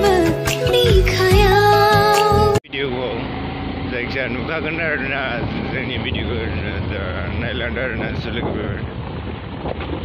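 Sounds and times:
motorbike engine hum: 0:02.4 - 0:10.0
wind rushing on microphone: 0:05.2 - 0:10.0.

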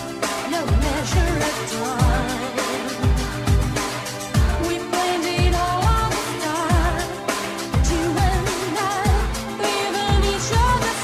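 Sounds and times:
disco pop song with singing: 0:00.0 - 0:11.0
kick drum beat: 0:03.0 - 0:03.8.

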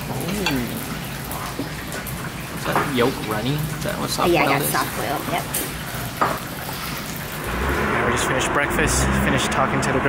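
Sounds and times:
restaurant room noise: 0:00.0 - 0:10.0.

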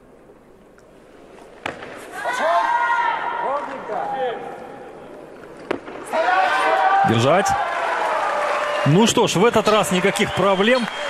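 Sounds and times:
crowd shouting encouragement: 0:02.2 - 0:04.4, 0:06.1 - 0:11.0.

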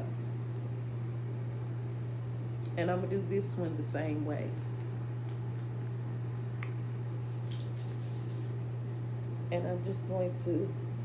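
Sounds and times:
electric massager humming: 0:00.0 - 0:11.0
hands rubbing hair: 0:07.2 - 0:08.6.

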